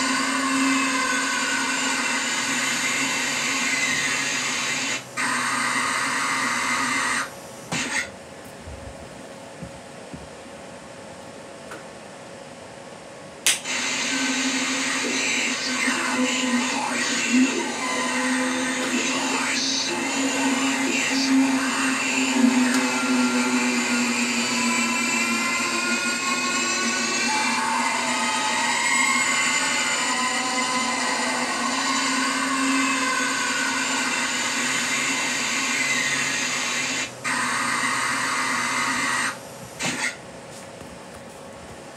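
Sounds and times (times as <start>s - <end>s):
drawn-out tones: 13.7s - 39.4s
voice-like sounds: 14.1s - 39.3s.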